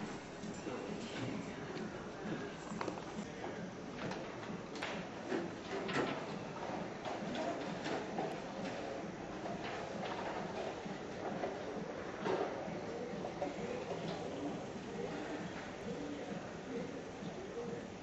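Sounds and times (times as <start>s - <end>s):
background murmur: 0.0s - 18.0s.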